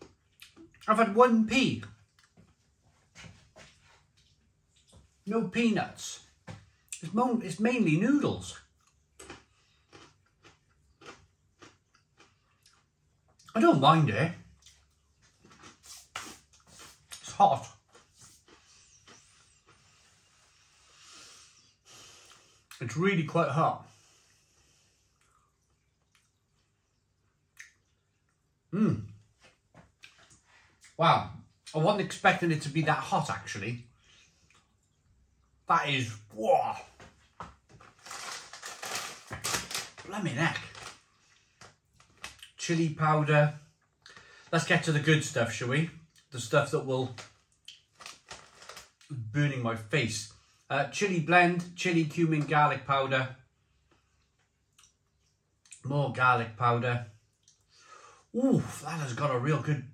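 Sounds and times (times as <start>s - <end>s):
crunchy snack being chewed: 8.7s - 13.0s, 14.6s - 20.1s, 37.8s - 42.6s, 47.2s - 49.1s
plastic packet crinkling: 37.8s - 41.1s, 47.1s - 49.0s.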